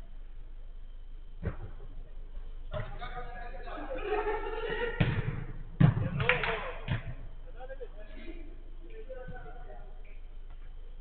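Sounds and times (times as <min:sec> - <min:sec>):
football thudding: 0:01.4 - 0:01.9, 0:05.0 - 0:06.3.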